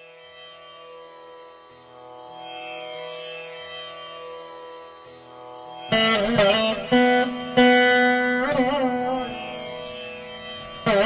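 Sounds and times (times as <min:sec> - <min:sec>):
plucked veena notes: 0:00.0 - 0:11.0.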